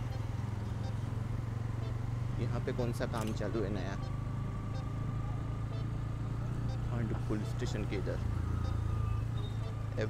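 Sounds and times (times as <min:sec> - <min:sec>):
motorcycle engine droning: 0:00.0 - 0:10.0.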